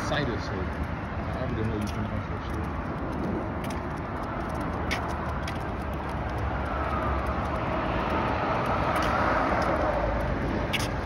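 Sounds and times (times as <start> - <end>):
road traffic passing: 0.0 - 11.0
falling whine of passing vehicle: 6.2 - 11.0.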